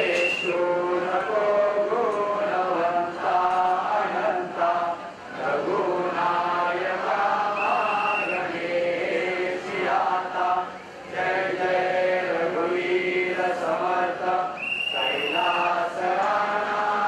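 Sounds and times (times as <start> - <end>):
group chanting in unison: 0.0 - 17.0.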